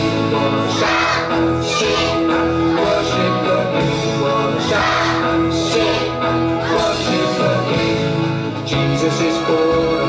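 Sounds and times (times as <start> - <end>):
instrumental music with guitar: 0.0 - 10.0.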